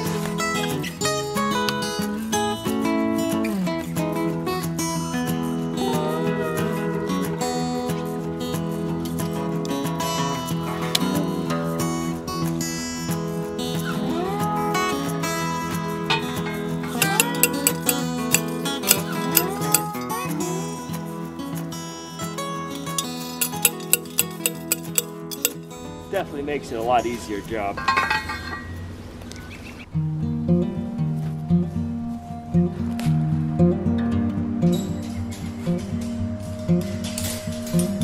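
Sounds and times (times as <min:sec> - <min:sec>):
acoustic guitar music: 0:00.0 - 0:29.0, 0:29.9 - 0:38.0
post driver clanking on metal: 0:17.0 - 0:20.0, 0:23.0 - 0:25.7, 0:27.8 - 0:28.7.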